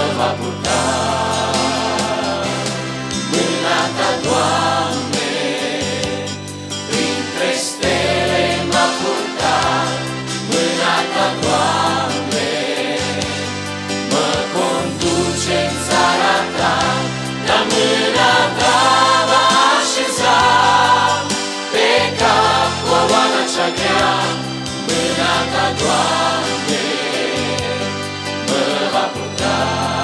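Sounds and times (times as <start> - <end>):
instrumental accompaniment: 0.0 - 30.0
vocal group singing in harmony: 0.0 - 30.0.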